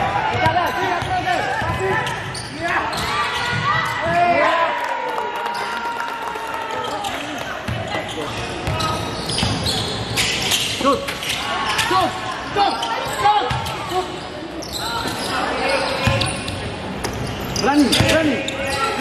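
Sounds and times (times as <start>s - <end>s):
players' voices and calls: 0.0s - 19.0s.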